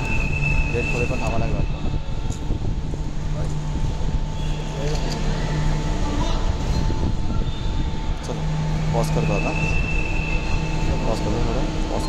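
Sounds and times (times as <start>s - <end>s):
low hum: 0.0s - 12.0s
terminal background rumble: 0.0s - 12.0s.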